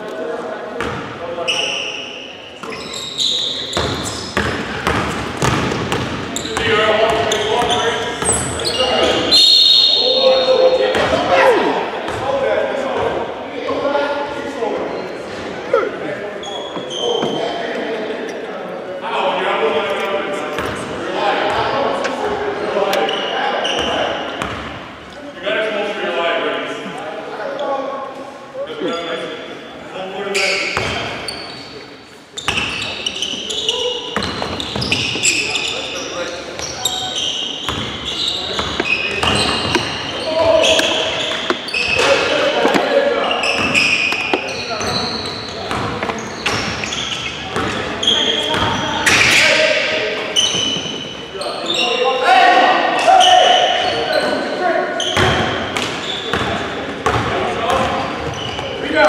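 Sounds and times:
voices calling out in a gym: 0.0 - 59.0
basketball bouncing on wooden floor: 3.8 - 7.3
players shouting: 8.5 - 12.0.

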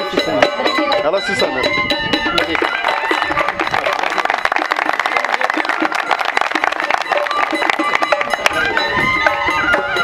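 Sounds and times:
faint traditional music: 0.0 - 10.0
audience applauding: 2.8 - 8.3.

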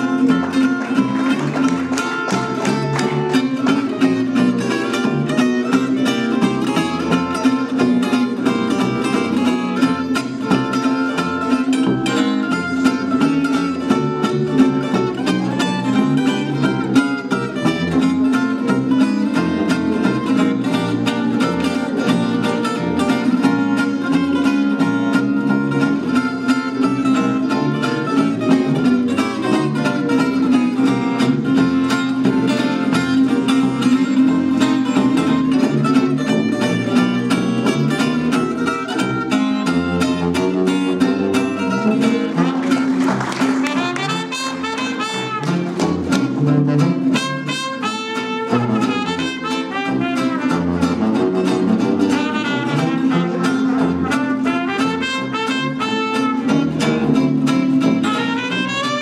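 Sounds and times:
acoustic jazz guitar solo: 0.0 - 59.0
bass saxophone bass line: 0.0 - 59.0.

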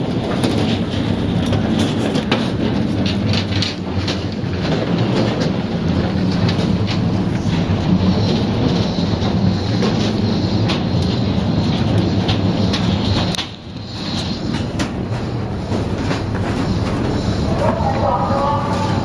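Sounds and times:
footsteps on metal gangway: 0.0 - 19.0
low rumble: 0.0 - 19.0
suitcase wheels rolling: 0.0 - 19.0.

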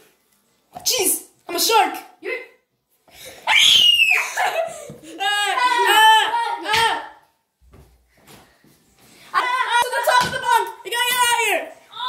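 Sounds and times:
child shouting or chanting: 9.4 - 12.0.

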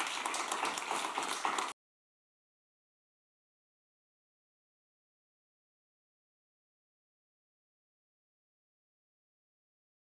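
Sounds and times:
audience applauding: 0.0 - 1.8.

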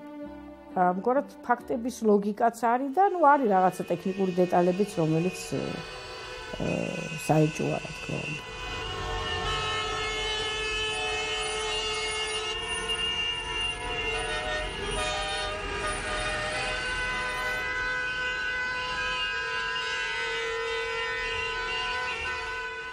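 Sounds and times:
many car horns honking: 2.9 - 22.9.

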